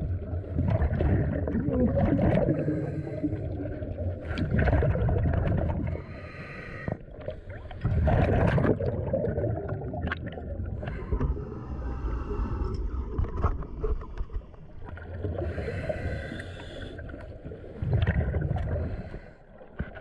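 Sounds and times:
exhaled bubbles rumbling underwater: 0.0s - 20.0s
diver breathing through regulator: 2.4s - 3.7s, 5.9s - 8.1s, 10.8s - 12.9s, 15.4s - 17.9s, 18.6s - 19.6s.

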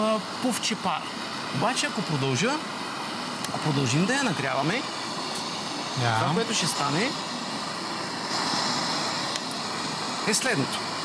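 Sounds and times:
blowtorches hissing: 0.0s - 11.0s
higher hiss: 0.0s - 11.0s.

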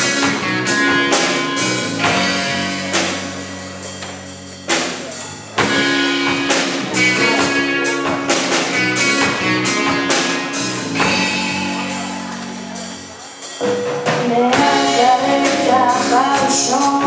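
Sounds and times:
drum kit with cymbal crashes: 0.0s - 17.0s
electric guitar chords: 0.0s - 17.0s.

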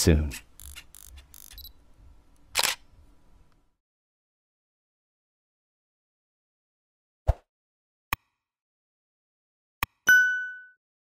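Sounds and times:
camera shutter clicks: 0.6s - 1.8s, 2.5s - 2.9s.

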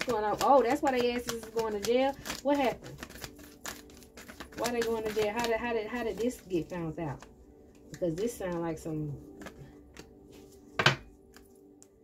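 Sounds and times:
faint background music: 0.0s - 12.0s
card slapped on table: 10.8s - 11.1s.

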